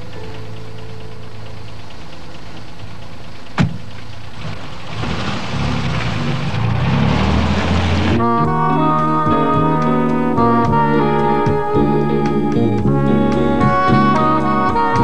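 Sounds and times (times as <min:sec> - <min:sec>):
car engine idling: 0:00.0 - 0:14.6
sharp thump: 0:03.6 - 0:03.9.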